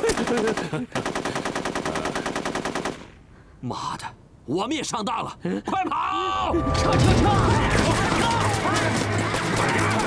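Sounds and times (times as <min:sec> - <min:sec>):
machine-gun fire: 0:00.0 - 0:03.1, 0:07.0 - 0:10.0.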